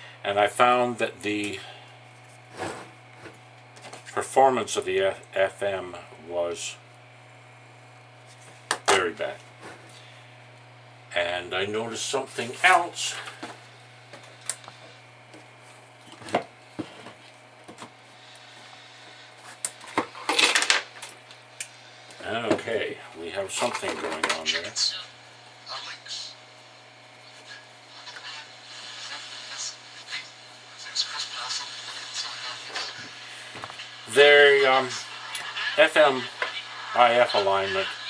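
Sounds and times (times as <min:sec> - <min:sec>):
low electrical hum: 0:00.0 - 0:38.0.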